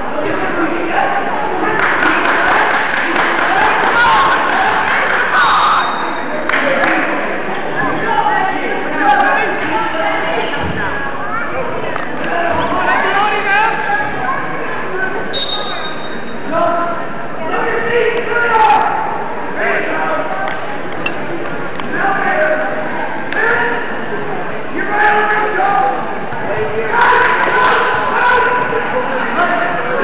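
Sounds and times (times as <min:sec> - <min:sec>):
referee's whistle: 0:05.4 - 0:06.3, 0:15.3 - 0:16.4.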